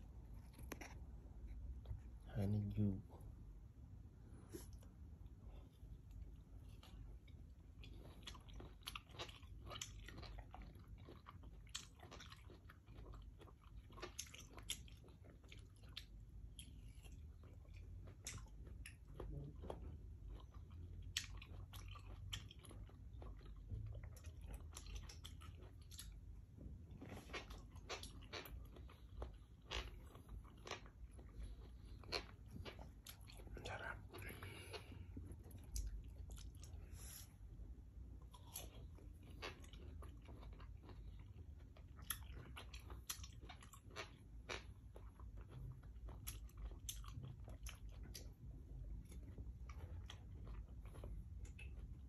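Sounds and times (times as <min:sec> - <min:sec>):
chewing soft melon: 0:04.3 - 0:52.0.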